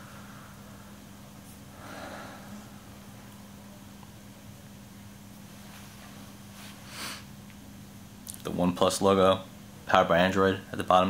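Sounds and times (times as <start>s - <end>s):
low electrical hum: 0.0s - 11.0s
soft rush of noise: 0.0s - 11.0s.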